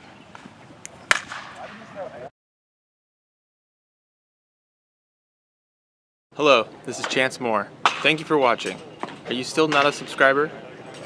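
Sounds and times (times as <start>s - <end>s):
faint field background: 0.0s - 2.3s, 6.3s - 11.0s
baseball bat hitting ball: 1.1s - 1.8s.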